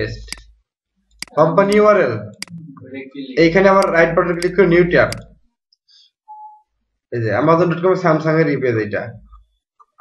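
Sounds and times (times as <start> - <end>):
man speaking: 1.3 - 5.4
faint whistle-like tone: 6.3 - 6.7.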